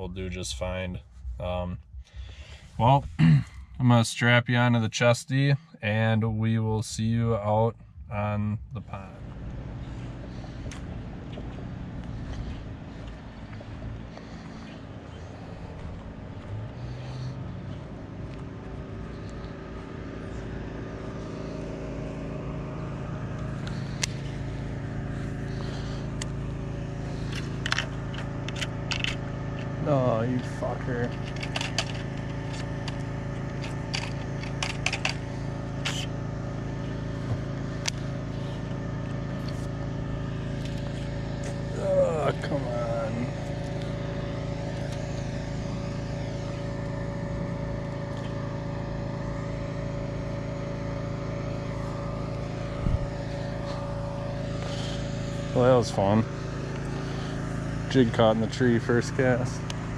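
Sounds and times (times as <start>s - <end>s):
machine hum: 0.0s - 59.9s
person speaking: 41.7s - 43.4s.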